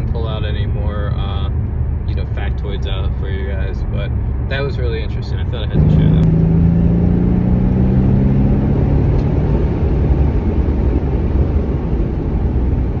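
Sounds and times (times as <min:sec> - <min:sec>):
car engine drone from inside cabin: 0:00.0 - 0:13.0.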